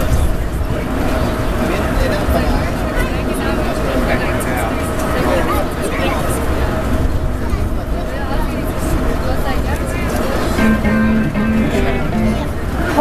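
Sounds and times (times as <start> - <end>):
passengers talking: 0.0 - 13.0
train car rumble and hum: 0.0 - 13.0.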